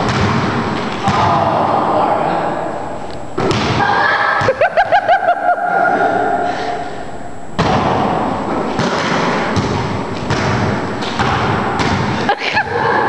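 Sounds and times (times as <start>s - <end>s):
basketball bouncing on court floor: 0.0s - 1.4s, 3.4s - 3.8s, 7.6s - 12.2s.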